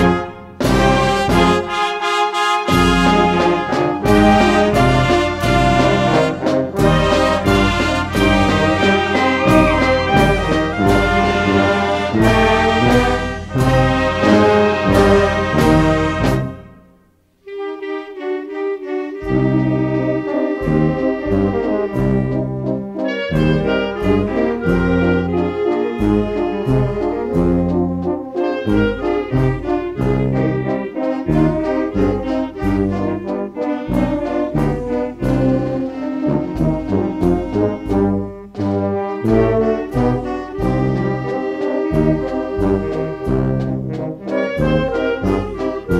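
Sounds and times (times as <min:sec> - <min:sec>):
brass band playing: 0:00.0 - 0:45.9.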